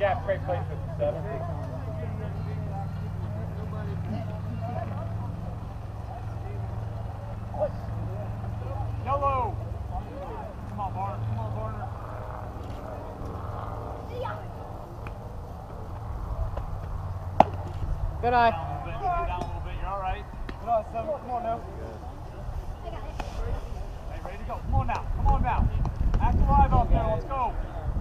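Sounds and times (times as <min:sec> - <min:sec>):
distant shouting voices: 0:00.0 - 0:28.0.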